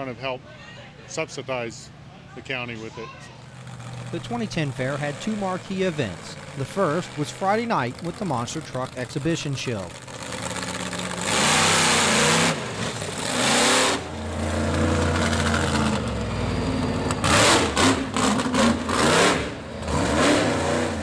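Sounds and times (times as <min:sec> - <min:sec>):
monster truck engines revving: 0:02.0 - 0:21.0.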